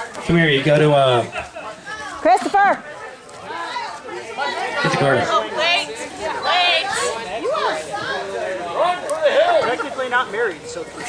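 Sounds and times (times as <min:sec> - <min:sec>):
background chatter of voices: 0:00.0 - 0:11.0.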